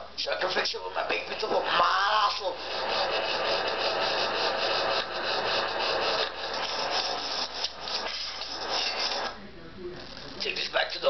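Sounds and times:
scraping on push lawnmower: 2.4 - 9.4.

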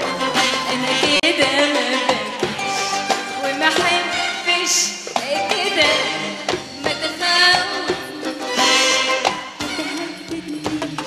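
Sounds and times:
live band playing pop song: 0.0 - 11.0
percussion strikes: 0.0 - 11.0.

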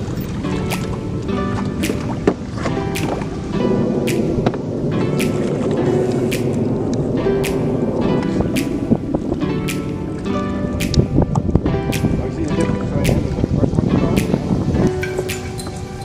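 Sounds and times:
held chords: 0.0 - 16.0
music with sharp beat hits: 0.5 - 16.0.

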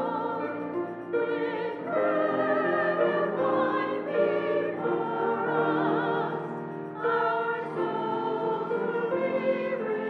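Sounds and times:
mixed choir singing: 0.0 - 10.0.

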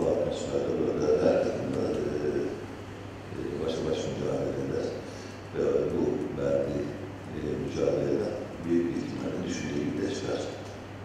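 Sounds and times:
man speaking into microphones: 0.0 - 2.7, 3.3 - 10.8.

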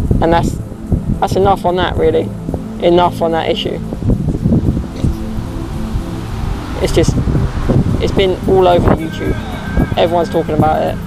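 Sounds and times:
background music with bass: 0.0 - 11.0
wind rumble: 0.0 - 11.0
microphone handling noise: 3.9 - 5.8.

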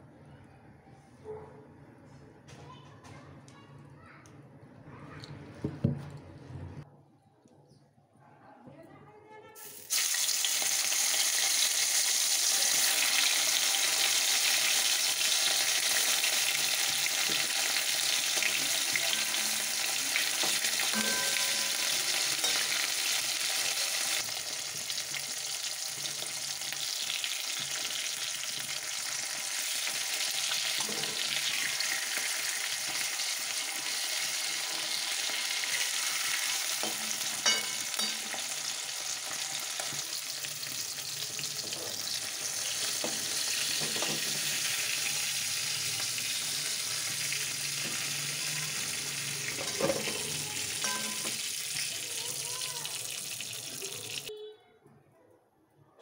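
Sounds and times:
fish sizzling in hot oil: 9.6 - 54.3.

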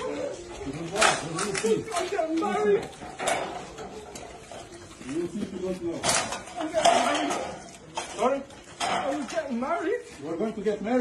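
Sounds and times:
shuffling footsteps on concrete: 7.4 - 11.0.

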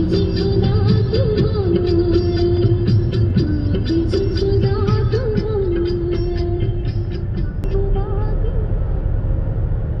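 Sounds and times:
car engine and tyres rumbling: 0.0 - 10.0.

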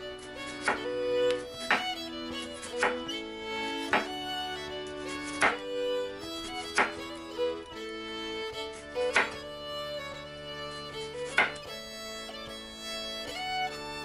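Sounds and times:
background music: 0.0 - 14.0
knife chopping on wooden board: 5.4 - 5.6, 6.8 - 7.0, 9.1 - 9.4, 11.4 - 11.6.

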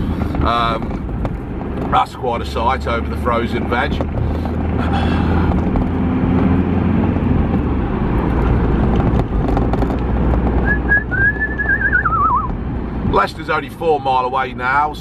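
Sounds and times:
van engine and road rumble: 0.0 - 15.0
person whistling: 10.6 - 12.5.

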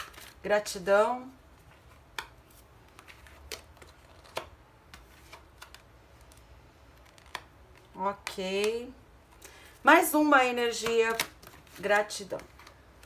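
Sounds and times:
cards snapping and tapping: 2.1 - 2.4, 3.0 - 6.4.

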